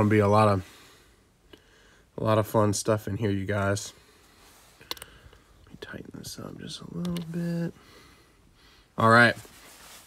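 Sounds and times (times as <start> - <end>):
man speaking softly: 5.7 - 7.8, 9.0 - 9.4.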